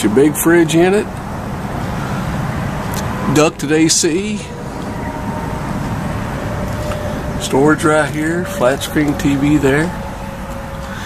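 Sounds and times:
steady rushing noise: 0:00.6 - 0:11.0.

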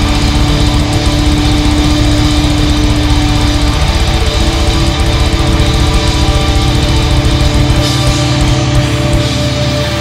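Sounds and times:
distorted guitar note: 0:00.0 - 0:10.0
rapid double-bass kick drums: 0:00.0 - 0:10.0.

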